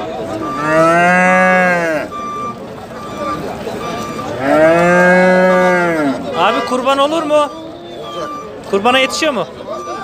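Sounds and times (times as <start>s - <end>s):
calf mooing: 0.4s - 2.1s, 4.4s - 6.2s.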